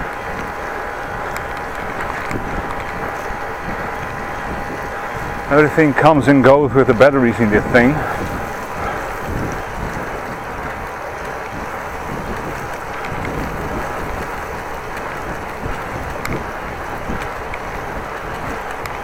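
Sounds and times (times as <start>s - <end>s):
bicycle rolling: 0.0s - 19.0s
wind: 0.0s - 19.0s.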